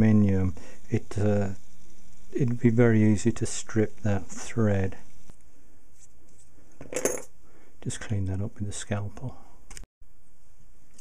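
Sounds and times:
metal parts clinking: 0:06.8 - 0:07.3.

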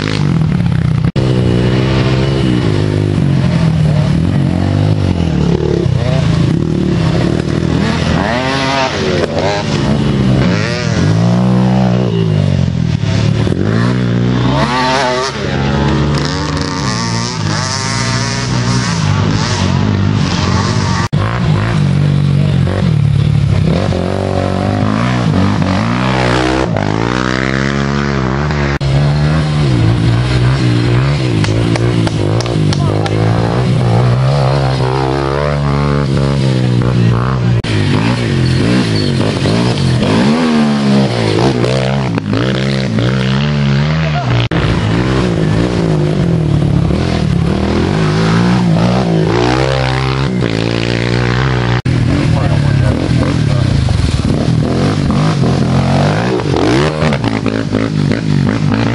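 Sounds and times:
quad engines revving: 0:00.0 - 0:58.9.

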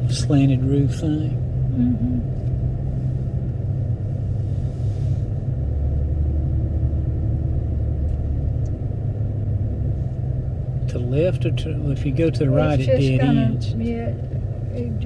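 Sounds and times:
car road and engine rumble: 0:00.0 - 0:15.0.

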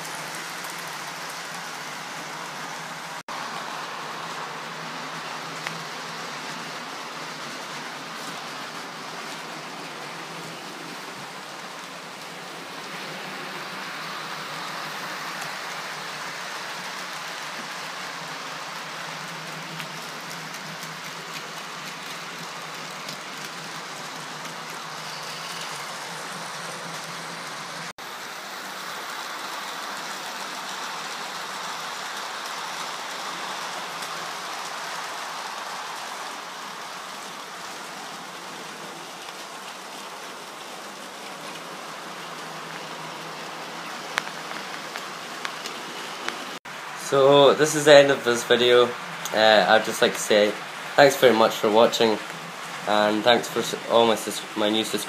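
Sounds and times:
model train motor and wheels on rails: 0:00.0 - 0:55.0.

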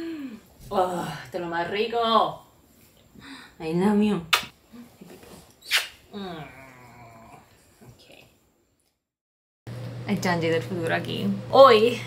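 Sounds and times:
dog groaning: 0:06.2 - 0:07.9.

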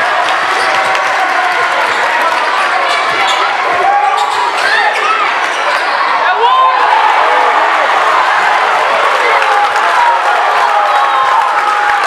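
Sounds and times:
crowd voices din: 0:00.0 - 0:12.0
sneaker squeaks: 0:02.8 - 0:06.0.

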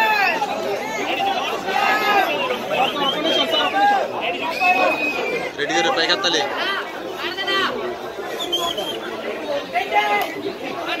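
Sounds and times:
people talking and chattering: 0:00.0 - 0:11.0.

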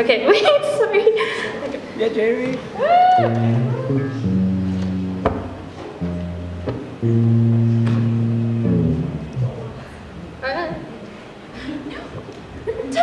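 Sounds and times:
electric guitar low chords: 0:03.2 - 0:10.4.

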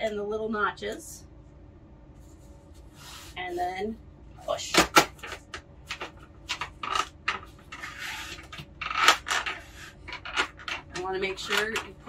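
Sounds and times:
plastic rubbing scrape: 0:06.5 - 0:12.0.

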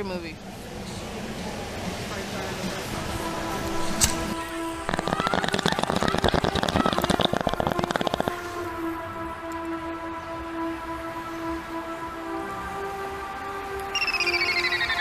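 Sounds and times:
held synth notes: 0:02.7 - 0:15.0
falling stuttering synth sweep: 0:04.6 - 0:08.7
fast dense electronic beat: 0:04.9 - 0:08.4.

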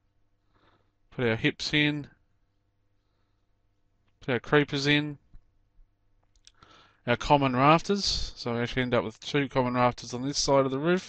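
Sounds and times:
person speaking: 0:01.2 - 0:02.1, 0:04.2 - 0:05.3, 0:07.1 - 0:11.0
faint clicks: 0:06.2 - 0:06.8
short in-breath: 0:06.5 - 0:07.0.

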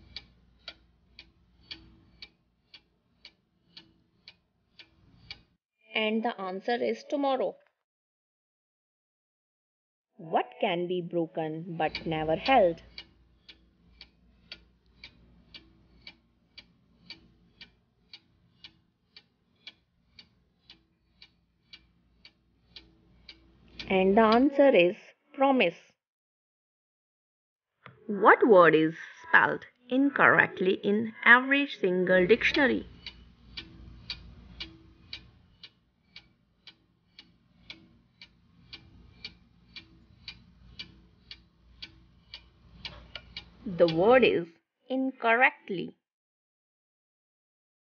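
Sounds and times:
clock ticking: 0:00.0 - 0:05.4, 0:10.7 - 0:24.7, 0:30.2 - 0:44.4.

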